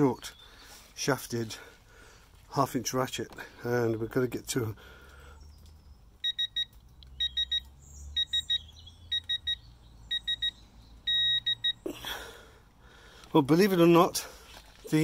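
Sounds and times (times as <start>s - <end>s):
torque adapter buzzer beeping: 6.2s - 11.8s.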